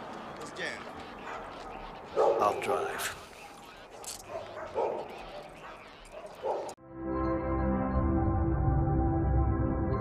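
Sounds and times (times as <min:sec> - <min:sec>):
street ambience: 0:00.0 - 0:06.8
dog barking: 0:01.2 - 0:06.8
steady music: 0:06.8 - 0:10.0.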